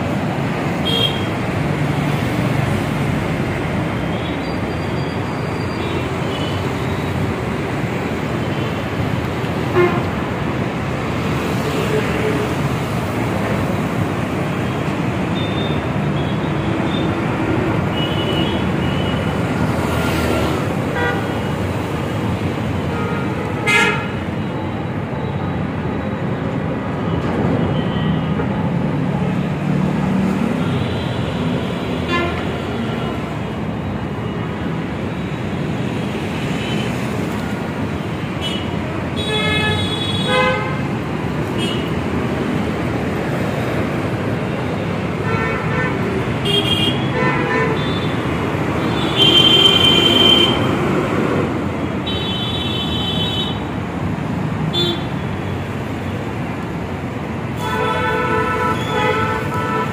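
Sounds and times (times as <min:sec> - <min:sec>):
city road traffic: 0:00.0 - 0:59.9
vehicle horns honking: 0:00.8 - 0:01.3, 0:22.9 - 0:24.2, 0:32.0 - 0:32.5, 0:38.4 - 0:40.9, 0:45.2 - 0:48.2, 0:48.9 - 0:50.7, 0:54.7 - 0:55.2, 0:57.6 - 0:59.9.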